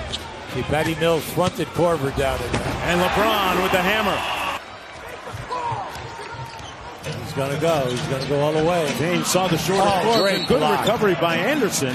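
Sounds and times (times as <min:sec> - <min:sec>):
arena crowd noise: 0:00.0 - 0:11.9.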